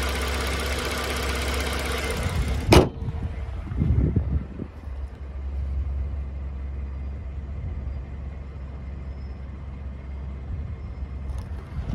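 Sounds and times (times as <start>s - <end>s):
car engine idling: 0.0s - 11.9s.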